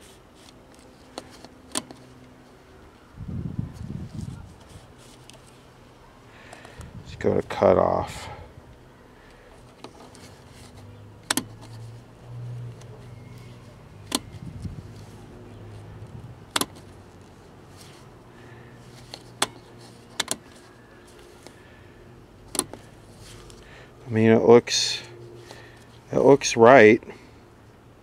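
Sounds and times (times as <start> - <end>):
low steady hum: 0.0 - 28.0
sharp control clicks: 11.2 - 11.7, 12.8 - 14.7, 16.5 - 16.9, 22.4 - 22.8.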